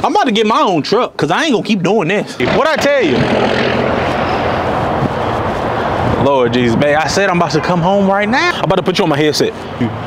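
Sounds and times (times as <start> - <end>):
truck engine passing: 2.4 - 10.0.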